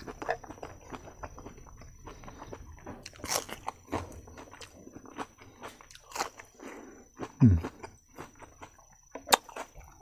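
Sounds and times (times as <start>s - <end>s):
person chewing crunchy food: 0.0s - 10.0s.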